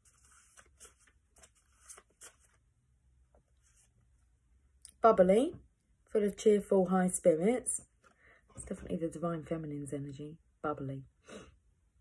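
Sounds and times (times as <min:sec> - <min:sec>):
cards rustling and tapping: 0:00.0 - 0:02.6.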